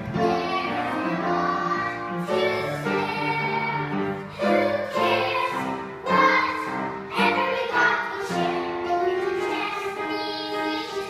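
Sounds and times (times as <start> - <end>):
children singing with music: 0.0 - 11.0.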